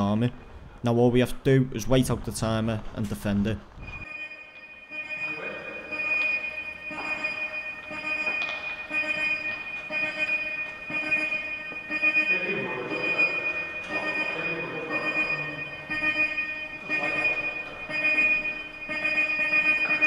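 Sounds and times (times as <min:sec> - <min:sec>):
electronic countdown tone: 0:04.0 - 0:20.0.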